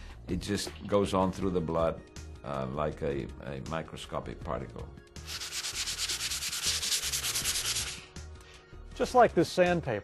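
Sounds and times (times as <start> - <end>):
hand sanding with sandpaper: 5.2 - 8.1.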